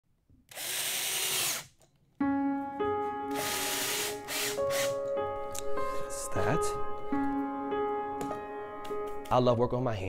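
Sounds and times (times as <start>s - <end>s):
power drill driving screw into wood: 0.5s - 1.8s, 3.3s - 4.9s.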